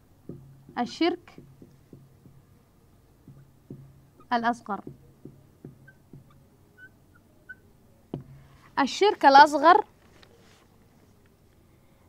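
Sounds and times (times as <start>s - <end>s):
marker squeaking on whiteboard: 3.2s - 8.6s.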